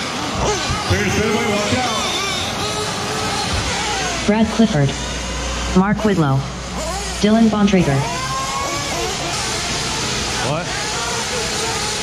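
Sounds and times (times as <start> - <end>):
rc car motors and tyres whirring: 0.0 - 12.0
voices: 0.0 - 12.0.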